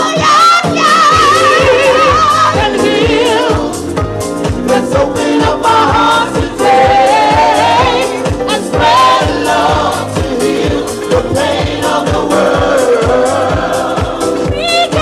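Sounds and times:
singers singing together: 0.0 - 15.0
steady dance beat: 0.0 - 15.0.

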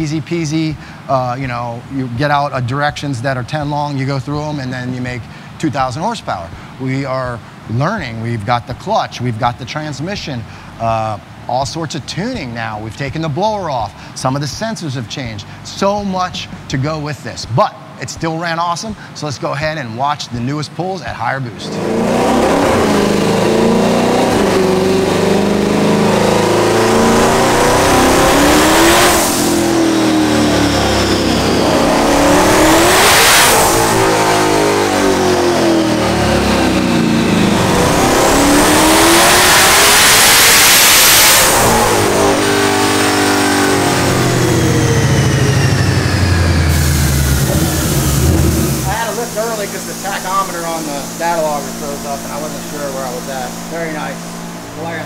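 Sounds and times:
car engine revving on dyno: 21.6 - 55.0
high turbo whine: 21.6 - 55.0.

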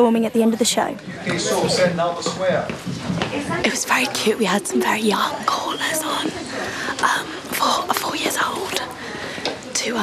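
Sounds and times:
woman whispering: 7.0 - 9.0.

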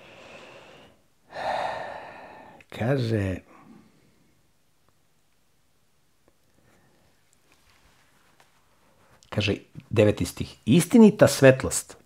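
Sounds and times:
man breathing in and out: 0.0 - 2.7.

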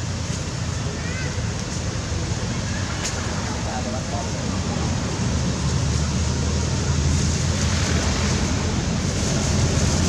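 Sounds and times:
outdoor rumble and hiss: 0.0 - 10.0.

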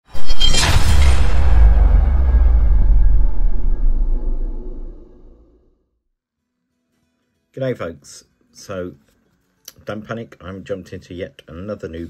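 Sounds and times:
deep low boom rumble: 0.5 - 5.6.

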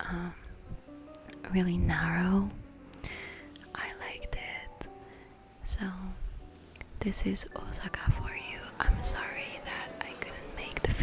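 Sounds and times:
faint background music: 0.0 - 11.0
woman whispering: 3.7 - 4.8.

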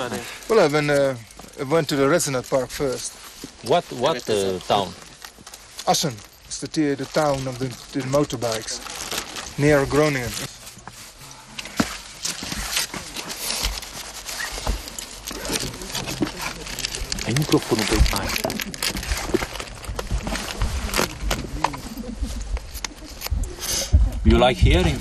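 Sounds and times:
first-aid supplies rustling and clicking: 0.0 - 23.6
low indistinct voices: 15.1 - 25.0.

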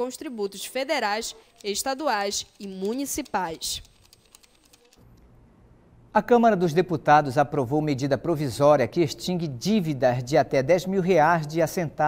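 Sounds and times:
faint low hum: 5.0 - 10.1.

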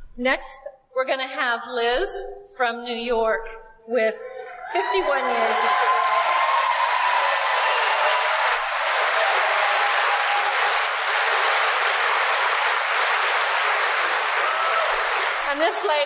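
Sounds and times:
audience applauding: 4.8 - 16.0.

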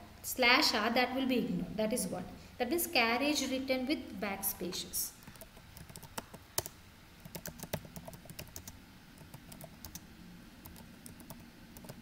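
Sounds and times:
computer keyboard typing: 5.2 - 10.0, 10.6 - 12.0.

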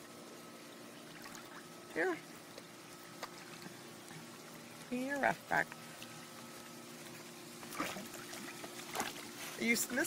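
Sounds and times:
pool water trickling and lapping: 0.0 - 10.0
steady low hum: 0.0 - 10.0.

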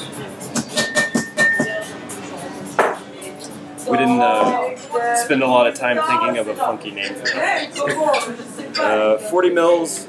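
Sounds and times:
background music: 0.0 - 8.2
sharp knock: 2.8 - 3.0.

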